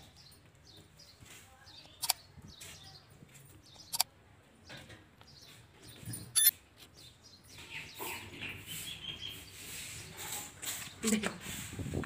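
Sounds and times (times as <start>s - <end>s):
small bird chirping: 0.0s - 10.1s.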